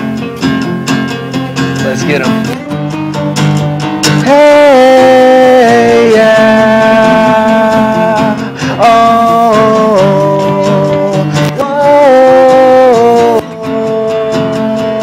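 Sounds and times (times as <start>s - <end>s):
acoustic guitars strumming: 0.0s - 15.0s.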